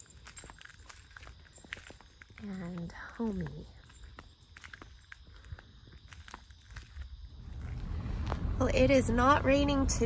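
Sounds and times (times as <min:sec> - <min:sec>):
soft footsteps: 0:00.0 - 0:08.9.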